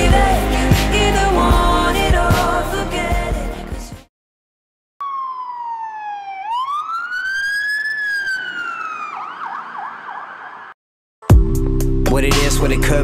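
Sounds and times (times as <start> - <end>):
emergency vehicle siren: 5.0 - 10.8.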